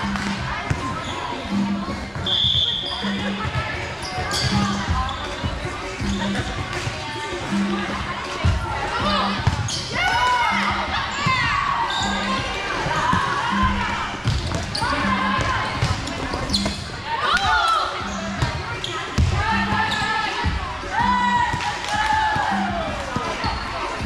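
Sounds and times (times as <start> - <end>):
shoes squeaking on court floor: 0.1 - 6.9, 9.2 - 20.6, 23.1 - 24.0.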